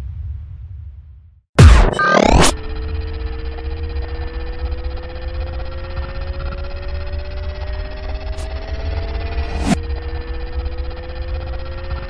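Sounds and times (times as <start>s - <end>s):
low rumble drone: 1.6s - 12.0s.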